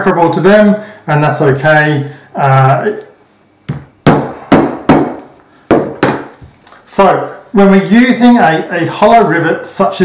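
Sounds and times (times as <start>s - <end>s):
mallet striking hole punch: 3.7s - 6.3s.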